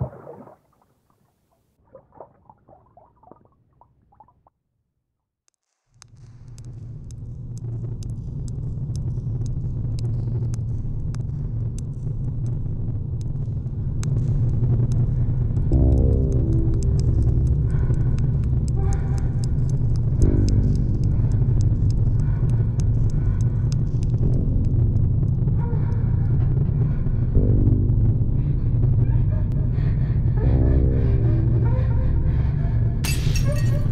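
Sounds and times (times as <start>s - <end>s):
faint crackling clicks: 5.5s - 26.9s
deep low drone: 6.3s - 33.9s.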